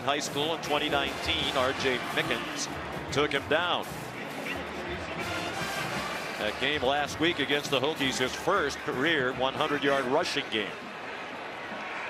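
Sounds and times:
background music: 0.0s - 12.0s
crowd noise: 0.0s - 12.0s.

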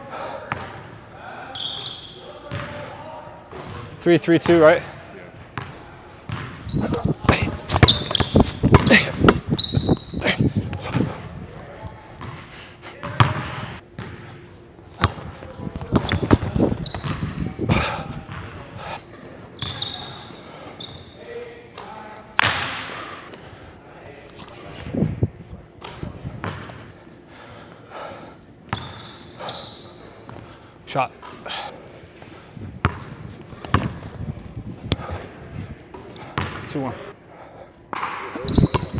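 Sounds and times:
sneakers squeaking on court: 0.5s - 0.9s, 1.5s - 2.9s, 5.6s - 11.2s, 12.2s - 12.4s, 13.0s - 22.8s, 25.8s - 26.9s, 28.0s - 30.4s, 32.8s - 35.2s, 35.9s - 36.7s, 38.0s - 38.9s
basketball bouncing on wooden floor: 6.3s - 10.0s.

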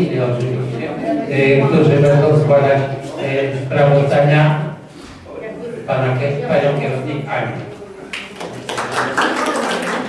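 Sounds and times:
audience clapping: 8.1s - 10.0s.

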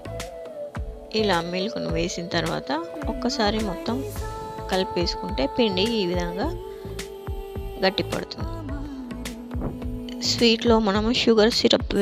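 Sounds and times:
steady beat: 0.8s - 12.0s.

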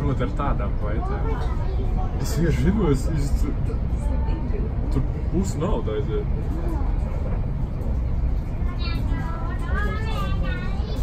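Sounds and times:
train rumble inside carriage: 0.0s - 11.0s.

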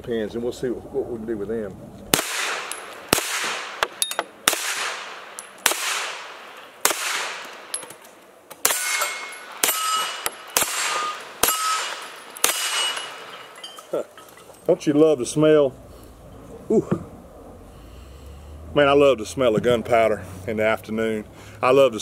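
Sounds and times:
rifle gunshots with echo: 2.1s - 7.8s, 8.6s - 13.6s
metallic clang of steel targets: 2.2s - 14.7s.

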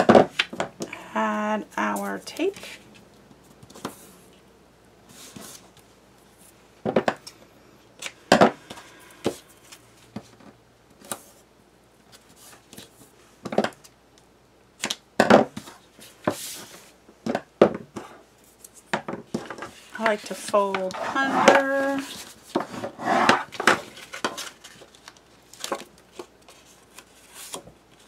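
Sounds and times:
paper crackles and taps: 23.6s - 28.0s.

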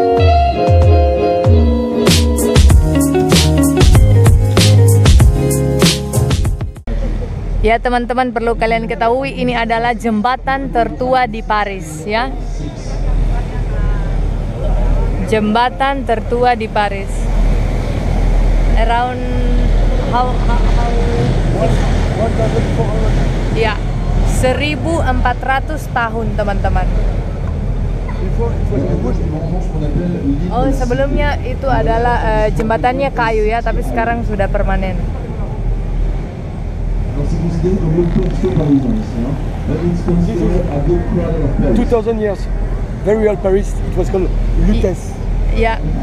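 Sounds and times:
boat engine rumbling: 0.0s - 46.0s
water rushing along hull: 7.0s - 46.0s
faint voices: 37.0s - 46.0s.

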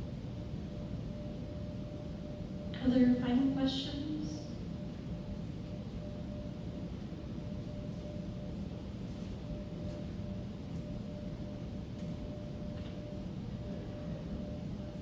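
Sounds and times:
faint hum: 0.0s - 15.0s.

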